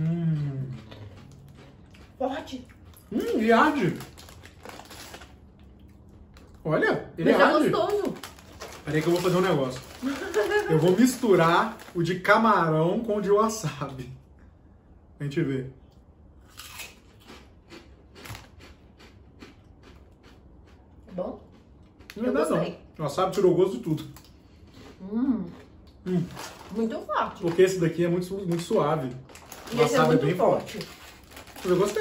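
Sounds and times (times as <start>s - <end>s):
crunching and chewing chips: 0.0s - 6.6s, 7.4s - 12.4s, 16.4s - 22.4s, 23.3s - 32.0s
chip bag handled: 3.8s - 5.3s, 7.8s - 12.2s, 26.2s - 32.0s.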